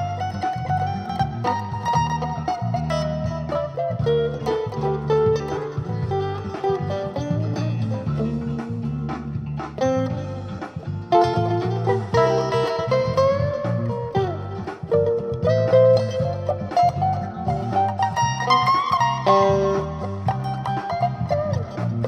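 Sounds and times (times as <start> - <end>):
backing track with bass line: 0.0 - 22.0
electric guitar playing blues lead: 0.0 - 22.0.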